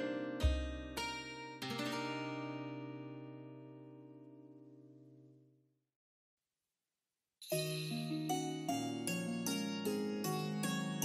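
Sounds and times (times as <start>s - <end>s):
plucked-string music: 0.0s - 5.2s, 7.5s - 11.0s.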